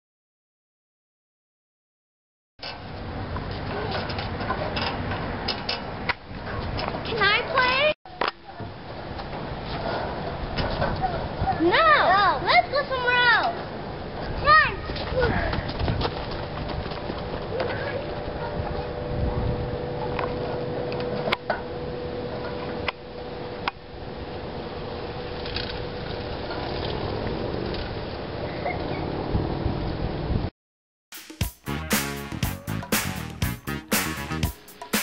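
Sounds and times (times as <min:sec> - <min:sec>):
wind rumble on microphone: 0:08.6 - 0:11.8, 0:13.6 - 0:21.4, 0:23.5 - 0:30.5
child shouting: 0:14.4 - 0:15.5.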